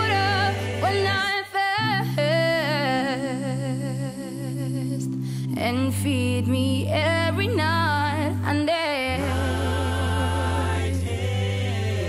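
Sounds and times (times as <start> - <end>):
men singing in close harmony: 9.2 - 12.0.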